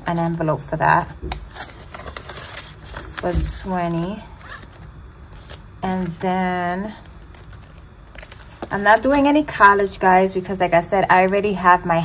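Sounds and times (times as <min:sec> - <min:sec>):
paper banknotes rustling: 0:01.5 - 0:05.6, 0:07.2 - 0:09.9.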